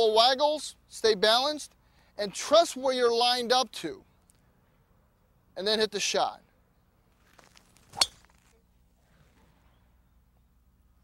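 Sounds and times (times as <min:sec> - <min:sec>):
golf club striking ball: 0:07.9 - 0:08.3.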